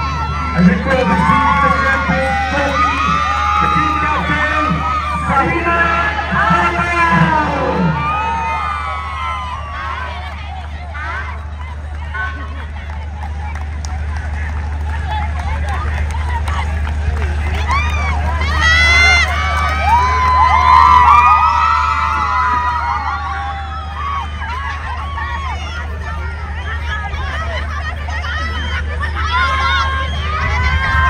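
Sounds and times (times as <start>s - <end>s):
crowd cheering and shouting: 0.0s - 31.0s
low hum: 0.0s - 31.0s.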